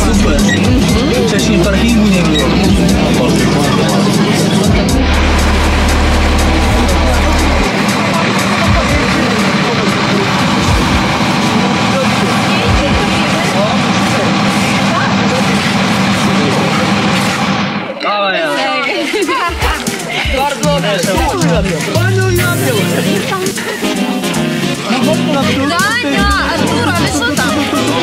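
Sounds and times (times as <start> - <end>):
bus engine running: 0.0 - 18.0, 19.1 - 28.0
music playing: 0.0 - 28.0
passengers chattering: 0.0 - 28.0.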